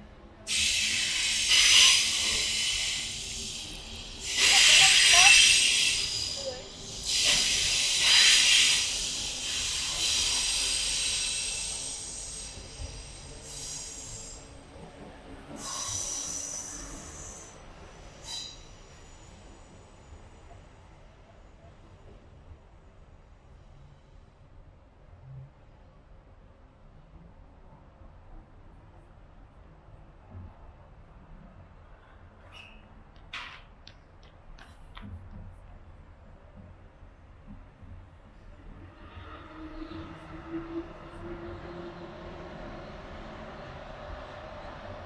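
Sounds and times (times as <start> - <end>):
train passing with loud hiss: 0.2 - 25.0, 38.1 - 45.0.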